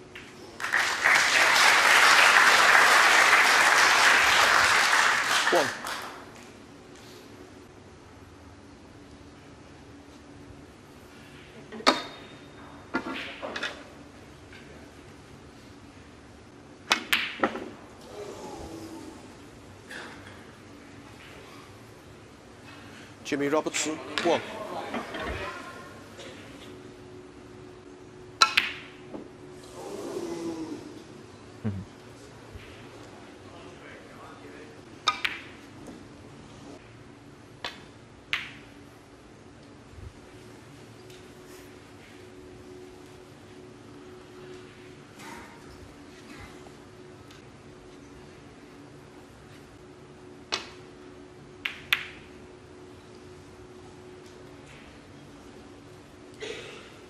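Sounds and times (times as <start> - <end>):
snooker balls clicking: 35.0 - 36.0, 37.6 - 38.8, 51.6 - 52.3.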